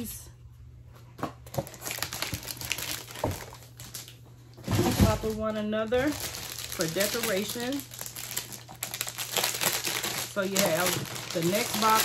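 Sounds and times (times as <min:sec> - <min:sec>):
paper and cardboard rustling: 0:01.5 - 0:12.0.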